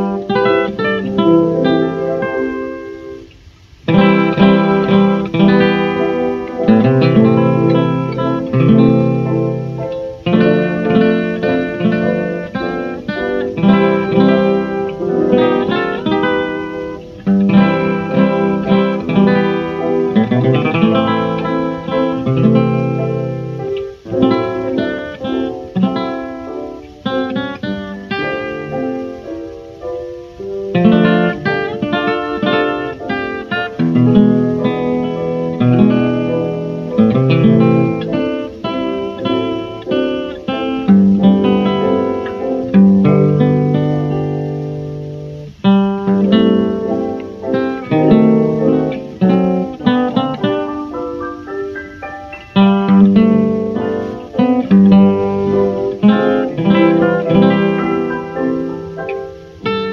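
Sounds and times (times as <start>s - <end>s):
jazz guitar melody: 0.0s - 59.9s.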